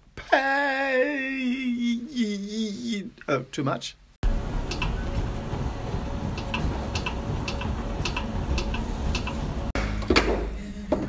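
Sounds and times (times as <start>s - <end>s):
clock ticking: 4.6s - 5.2s, 6.3s - 9.4s.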